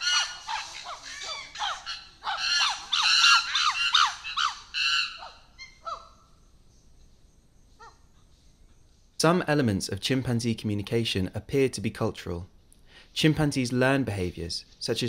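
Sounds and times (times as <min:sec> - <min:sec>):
chimpanzee screaming: 0:00.0 - 0:06.2.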